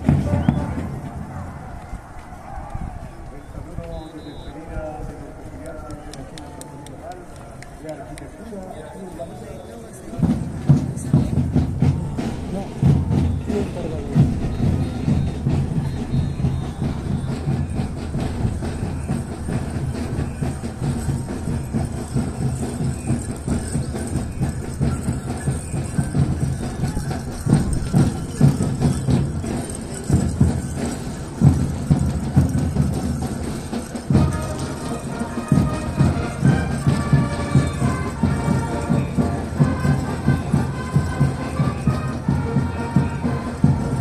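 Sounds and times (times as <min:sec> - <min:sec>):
crowd voices: 0:00.0 - 0:44.0
music: 0:10.2 - 0:44.0.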